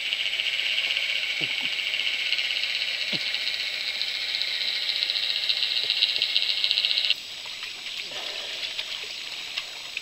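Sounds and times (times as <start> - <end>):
high-pitched crackling buzz: 0.0 - 7.2.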